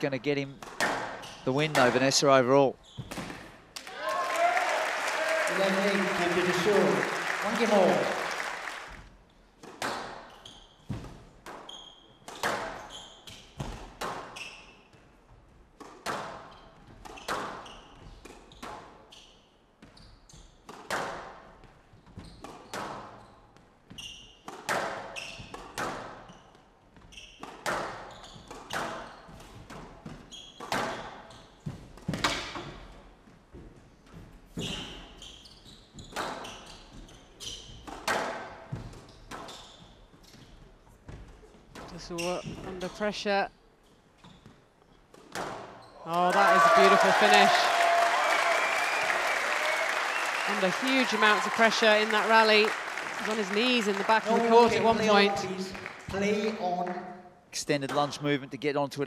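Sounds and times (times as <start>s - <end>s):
squash ball hits echoing: 0.6s - 2.1s, 37.8s - 39.5s
shoe squeaks on court floor: 2.8s - 3.4s, 10.2s - 11.0s, 11.6s - 15.1s, 16.4s - 20.6s, 21.9s - 29.6s, 30.2s - 32.7s, 34.5s - 38.0s, 38.8s - 40.6s, 42.0s - 43.0s, 44.2s - 46.1s.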